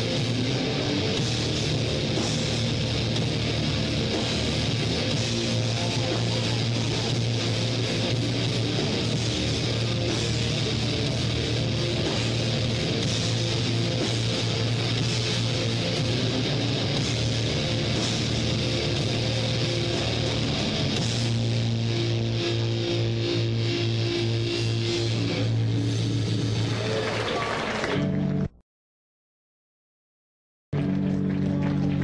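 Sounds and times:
rock band sustained chords: 0.0s - 28.5s.

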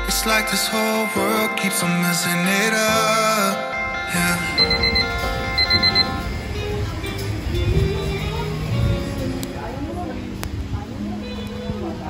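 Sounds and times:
background music: 0.0s - 12.0s
digital alarm clock beeping: 3.4s - 6.4s.

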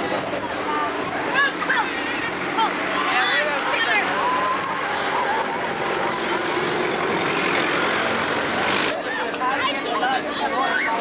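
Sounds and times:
vehicle engine running: 0.0s - 8.9s
crowd talking: 0.0s - 11.0s.

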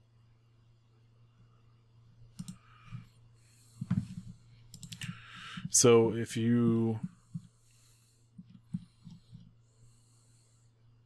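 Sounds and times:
faint low hum: 0.0s - 11.0s
computer mouse clicks: 2.3s - 3.1s, 3.8s - 5.2s.

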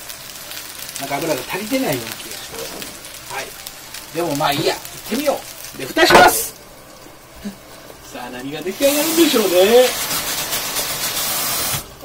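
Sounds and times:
batter sizzling in a frying pan: 0.0s - 12.0s.

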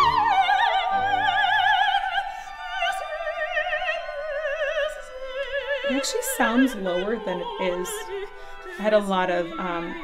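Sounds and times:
operatic soprano singing: 0.0s - 10.0s.

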